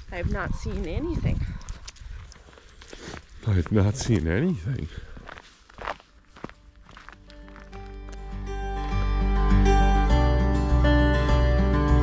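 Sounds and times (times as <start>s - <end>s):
footsteps on dirt trail: 0.0s - 8.5s.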